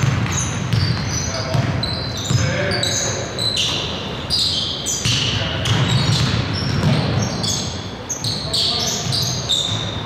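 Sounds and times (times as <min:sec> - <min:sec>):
basketball bouncing: 0:00.0 - 0:02.6, 0:05.0 - 0:07.4
sneakers squeaking on hardwood: 0:00.0 - 0:10.0.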